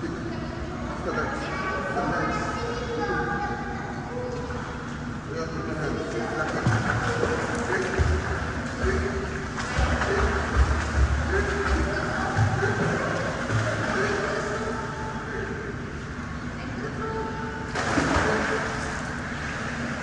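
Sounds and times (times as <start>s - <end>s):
swimmer splashing in pool: 17.7s - 20.0s.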